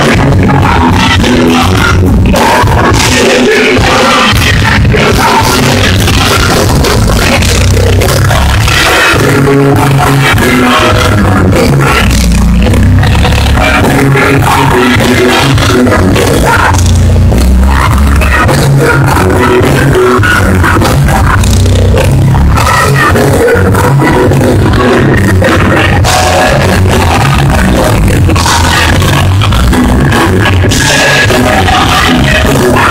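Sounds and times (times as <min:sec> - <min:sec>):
worship band and singers: 0:00.0 - 0:16.9, 0:17.7 - 0:32.9.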